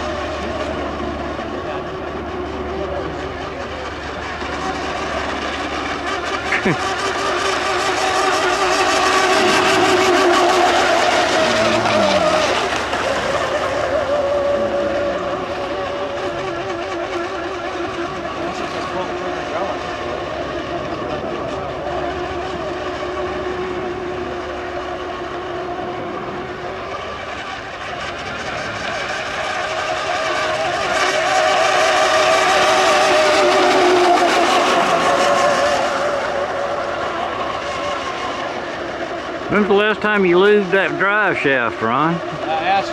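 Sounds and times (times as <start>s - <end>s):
racing boat motor whine: 0.0s - 42.9s.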